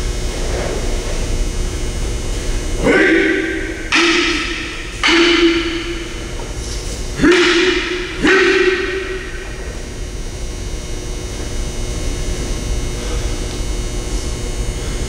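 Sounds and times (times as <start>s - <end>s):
hall background noise: 0.0s - 10.4s
sharp shouts: 2.8s - 6.4s, 7.1s - 9.9s.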